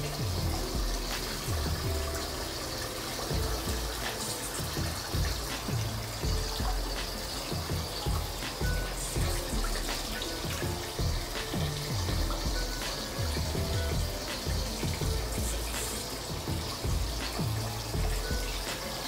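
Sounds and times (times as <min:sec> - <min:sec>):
shower water splashing on hair: 0:00.0 - 0:19.0
soft background music: 0:00.0 - 0:19.0.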